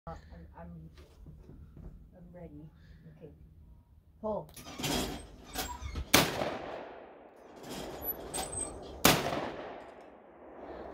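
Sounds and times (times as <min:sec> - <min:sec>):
shotgun shots with echo: 0:06.1 - 0:07.2, 0:09.0 - 0:10.6.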